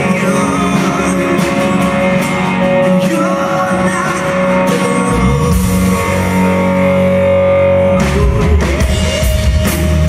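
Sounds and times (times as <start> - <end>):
bass guitar: 0.0 - 10.0
drums: 0.0 - 10.0
electric and acoustic guitars: 0.0 - 10.0.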